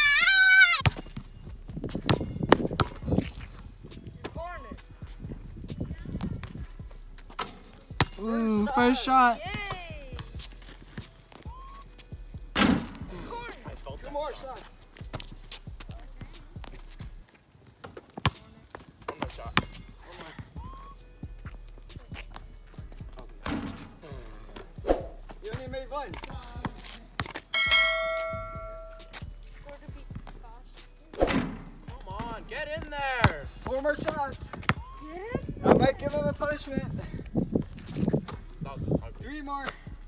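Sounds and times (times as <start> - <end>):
basketball thuds: 0.8 - 3.3, 7.2 - 8.2, 12.5 - 13.2, 23.1 - 24.7, 31.1 - 32.5
ringing tone: 27.5 - 29.0.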